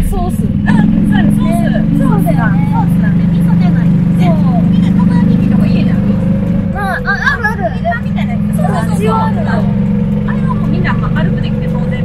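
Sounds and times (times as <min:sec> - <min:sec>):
golf cart humming: 0:00.0 - 0:12.0
women chatting: 0:00.0 - 0:12.0.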